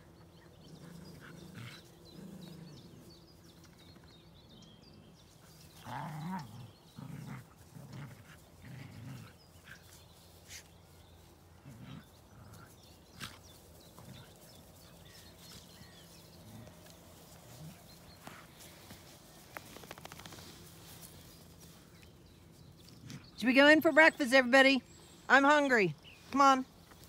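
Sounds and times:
dogs playing in grass: 0.0s - 27.0s
dog play growls: 0.4s - 3.2s, 5.1s - 9.9s, 11.5s - 20.9s.

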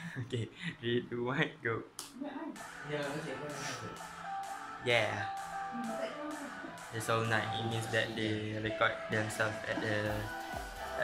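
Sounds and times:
faint pop music: 0.0s - 11.0s.

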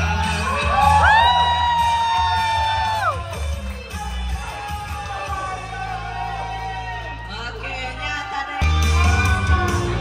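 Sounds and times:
crowd whooping: 0.0s - 7.9s
karaoke music with bass beat: 7.2s - 10.0s.

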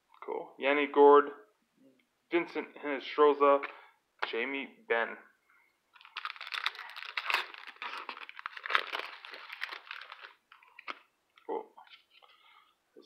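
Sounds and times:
foil wrapper crinkling: 5.9s - 11.1s.

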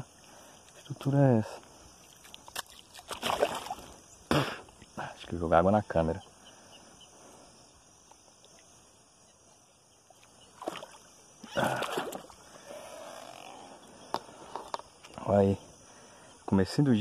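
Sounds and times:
water splashing beside kayak: 2.0s - 4.1s, 10.1s - 12.7s.

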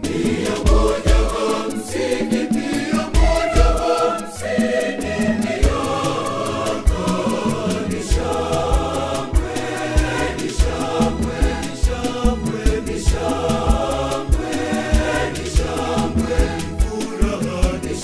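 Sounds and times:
bass and percussion beat: 0.0s - 18.0s
mixed choir singing gospel: 0.0s - 18.0s.

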